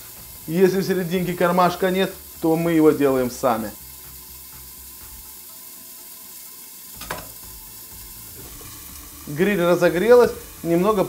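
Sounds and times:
chicken frying in oil: 0:00.0 - 0:11.0.

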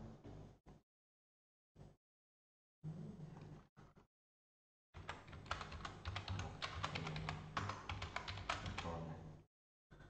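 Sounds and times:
rapid keyboard typing: 0:05.0 - 0:09.0.

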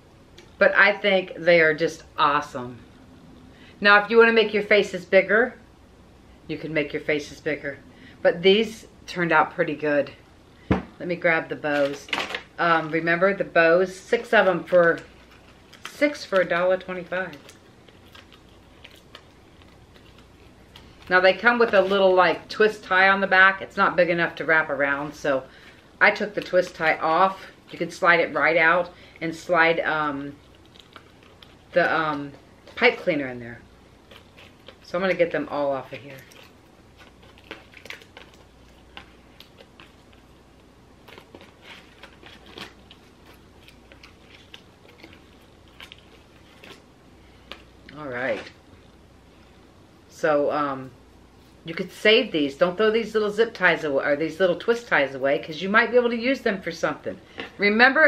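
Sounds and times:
faint crinkles and clicks: 0:14.6 - 0:21.9, 0:30.3 - 0:32.9, 0:34.0 - 0:35.2, 0:35.8 - 0:48.9.

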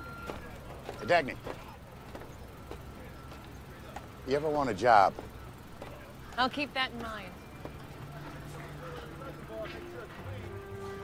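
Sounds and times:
low outdoor rumble: 0:00.0 - 0:11.0
footsteps on wooden bridge: 0:00.3 - 0:03.5.

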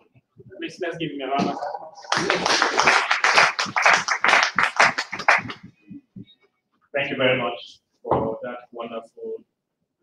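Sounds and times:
audience applauding: 0:02.0 - 0:05.6.

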